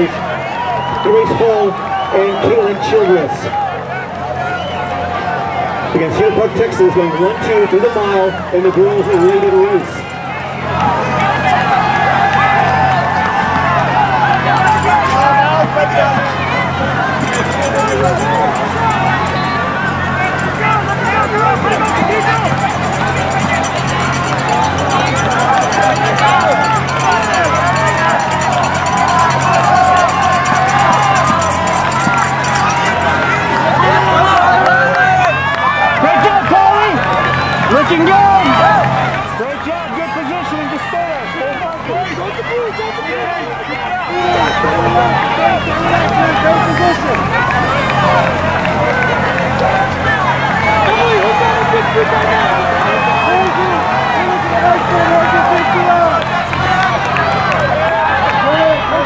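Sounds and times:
spectators shouting and cheering: 0.0s - 59.0s.

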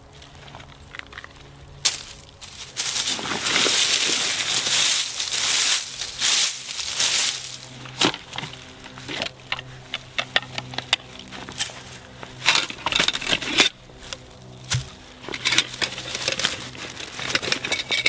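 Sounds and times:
rustling nylon pouch and leaves: 1.4s - 9.9s, 11.1s - 18.0s
clicks and knocks of metal and plastic: 8.0s - 13.8s, 14.7s - 18.0s.

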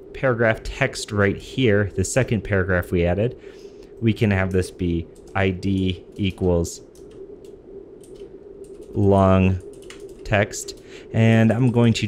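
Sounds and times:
computer keyboard typing: 5.2s - 7.2s, 8.0s - 10.8s.

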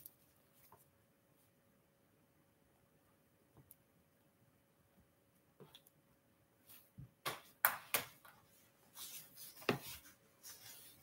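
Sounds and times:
soft rustling: 8.3s - 11.0s.

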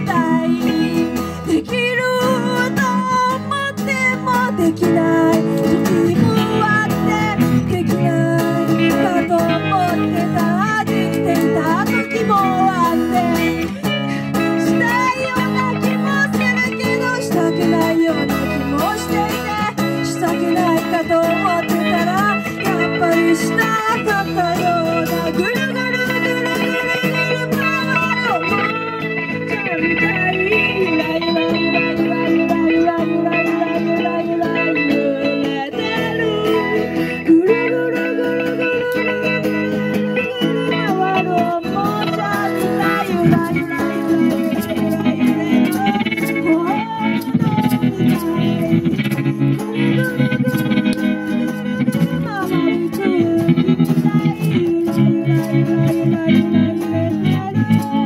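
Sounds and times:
live band through speakers: 0.0s - 58.0s.

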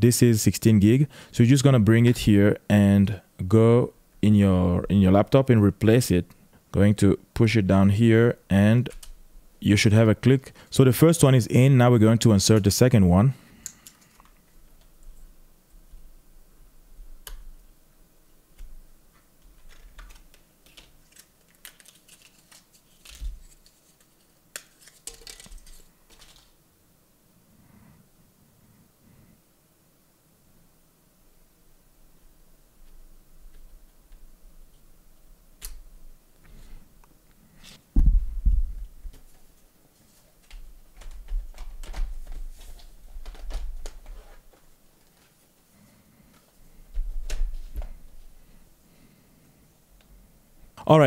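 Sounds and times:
memory sticks clicking and tapping: 19.4s - 26.5s
heavier knock: 38.0s - 38.8s.

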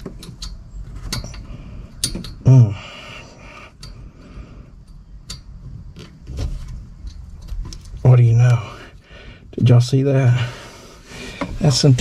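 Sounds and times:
light metal clicks of nut threading: 0.0s - 2.4s.

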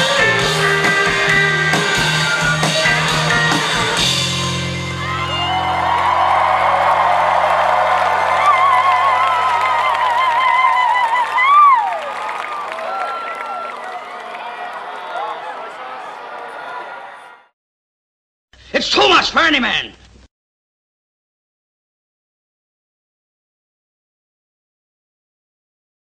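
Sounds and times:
crowd cheering and whooping: 0.0s - 17.5s.

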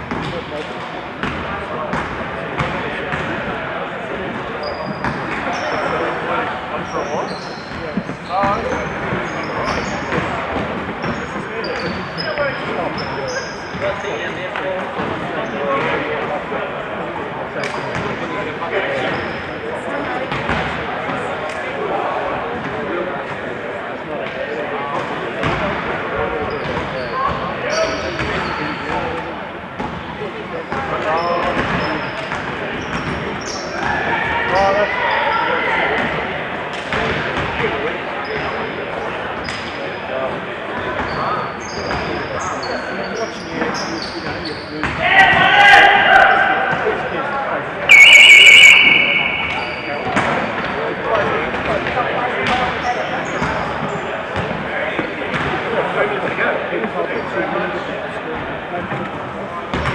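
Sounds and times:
basketball shoes squeaking: 4.6s - 6.0s, 6.8s - 14.2s, 26.5s - 28.9s, 47.9s - 50.7s
loud shout: 45.0s - 46.8s, 47.9s - 49.8s
players calling out: 47.6s - 50.7s
electronic buzzer: 47.9s - 49.6s.

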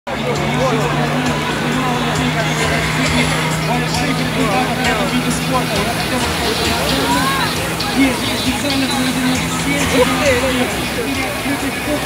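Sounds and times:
jet ski engine droning: 0.1s - 12.0s
spectators talking: 0.1s - 12.0s.

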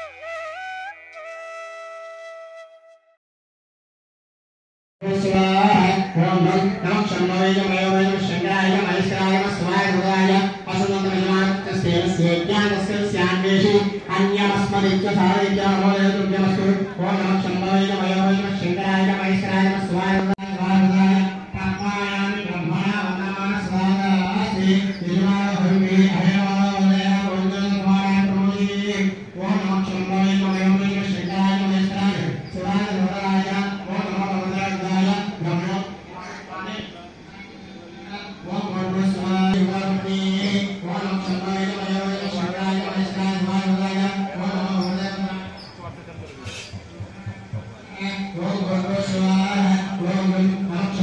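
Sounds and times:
mantra chanting: 47.9s - 51.0s.

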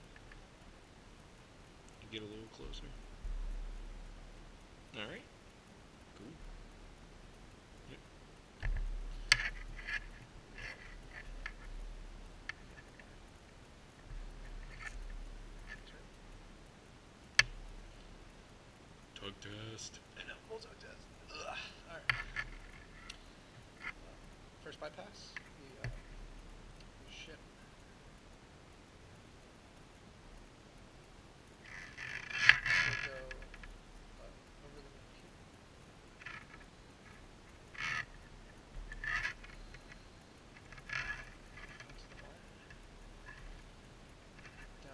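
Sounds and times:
wire cable scraping metal: 8.6s - 13.2s, 13.9s - 16.1s, 21.9s - 24.1s, 31.6s - 33.7s, 36.2s - 43.7s, 44.3s - 44.9s.

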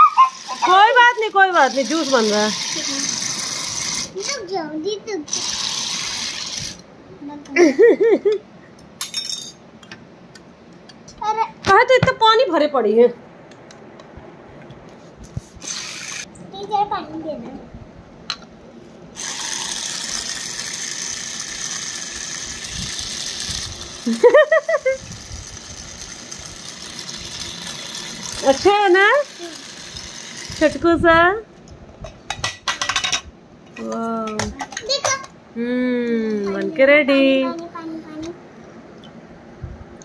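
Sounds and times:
toy juicer motor whirring: 0.0s - 4.6s, 5.3s - 6.8s, 15.6s - 16.3s, 19.2s - 30.8s.

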